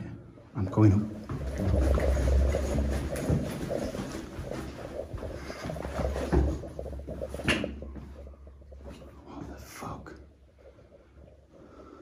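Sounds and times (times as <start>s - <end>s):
handheld camera scuffing and rumble: 1.1s - 9.8s
footsteps climbing stairs: 1.2s - 9.2s.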